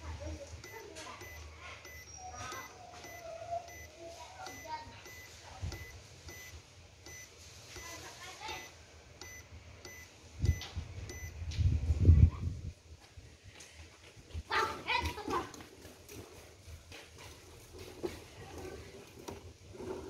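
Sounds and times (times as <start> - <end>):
short high beeps: 0.6 - 3.9, 4.5 - 7.9, 8.6 - 11.4.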